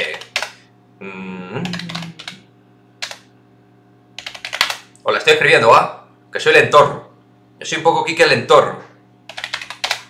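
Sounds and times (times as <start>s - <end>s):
computer keyboard typing: 0.0s - 0.6s, 1.6s - 2.4s, 3.0s - 3.3s, 4.2s - 4.9s, 9.3s - 10.0s.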